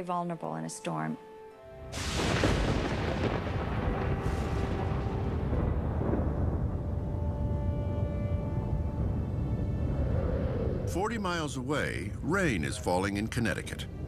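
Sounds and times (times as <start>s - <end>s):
thunderclap crash: 1.9s - 11.4s
deep rumble with hiss: 2.0s - 14.0s.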